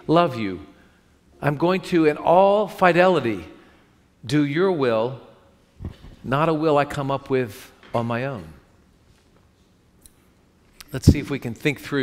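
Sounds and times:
man speaking: 0.0s - 0.8s, 1.4s - 3.6s, 6.2s - 8.6s, 10.8s - 12.0s.

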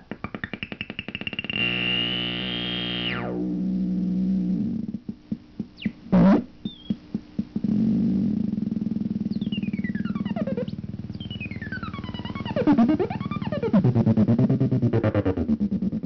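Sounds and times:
buzzy pulsing synthesizer tone: 1.0s - 5.2s, 5.8s - 16.0s
synthesizer blips and sweeps: 9.0s - 16.0s.

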